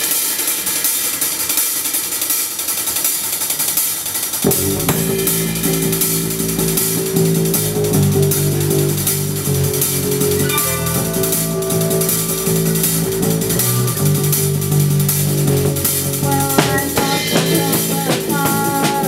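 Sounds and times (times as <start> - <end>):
cymbals and hi-hat: 0.0 - 19.0
electric guitar riff: 4.4 - 19.0
live rock band playing: 4.4 - 19.0.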